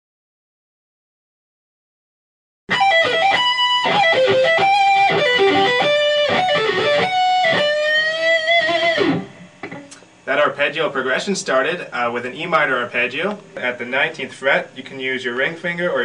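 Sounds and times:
electric guitar arpeggios: 2.7 - 10.0.

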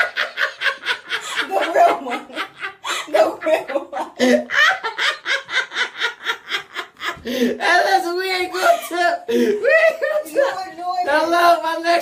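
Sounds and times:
person laughing: 0.0 - 7.6, 8.5 - 10.7.

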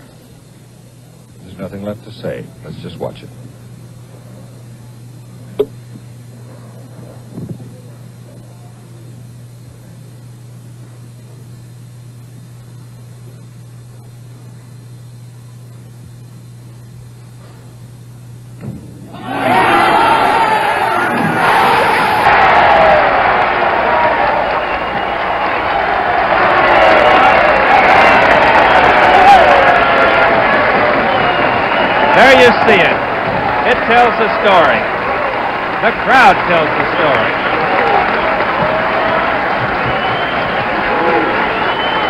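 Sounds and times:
crowd cheering and shouting: 19.1 - 42.0.

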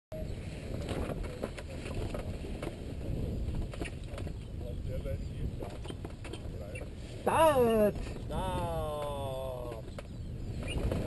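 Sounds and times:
wind buffeting microphone: 0.1 - 11.0
clicks and knocks from frame: 3.5 - 4.4.

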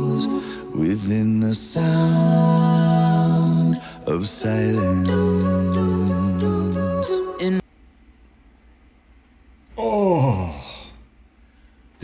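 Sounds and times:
man sighing: 9.8 - 11.1.

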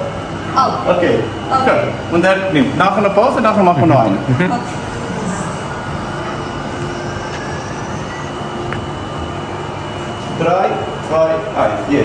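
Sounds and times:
even rushing hum: 0.0 - 12.0.

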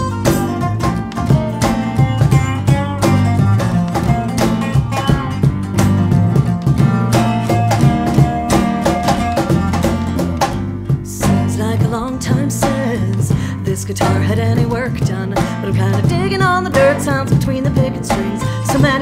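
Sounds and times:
acoustic guitar: 0.0 - 19.0
bass guitar: 0.0 - 19.0
cajon beat: 0.0 - 19.0
resonator guitar: 0.0 - 19.0.

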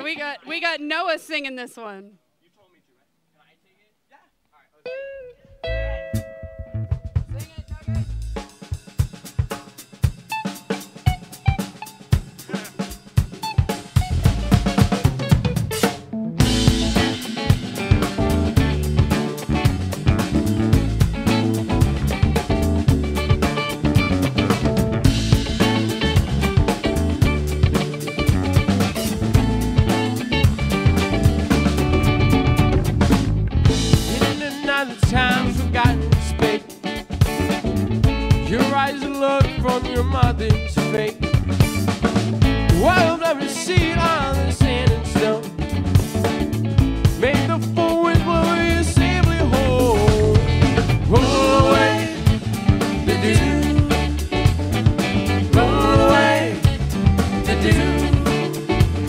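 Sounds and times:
electric guitars: 4.8 - 7.3, 10.2 - 59.0
bass: 5.3 - 59.0
congas: 5.5 - 59.0
drum kit: 6.0 - 59.0.

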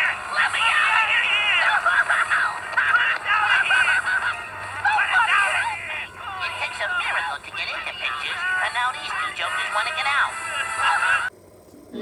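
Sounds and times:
high cartoon voices: 0.0 - 11.3
lively cartoon music: 0.0 - 11.3.

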